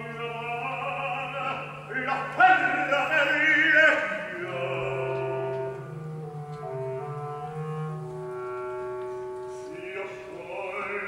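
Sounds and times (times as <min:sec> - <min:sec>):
clarinets and brass chords: 0:02.6 - 0:09.8.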